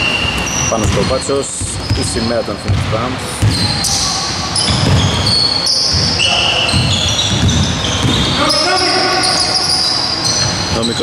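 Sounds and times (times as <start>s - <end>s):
sneakers squeaking: 0.0s - 11.0s
basketball dribbling on wooden floor: 0.3s - 3.7s, 4.6s - 5.3s, 5.9s - 8.4s.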